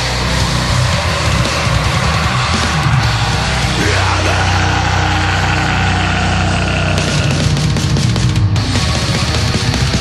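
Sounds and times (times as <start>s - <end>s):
distorted guitar chord droning: 0.0s - 10.0s.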